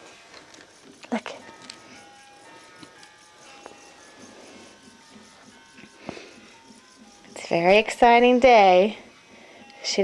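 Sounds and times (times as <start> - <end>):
tinkly electronic toy melody: 0.7 - 10.0.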